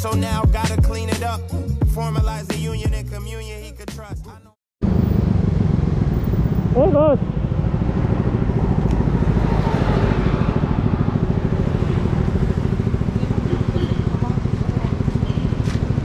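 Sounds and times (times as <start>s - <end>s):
motorcycle engine idling: 10.2s - 16.0s.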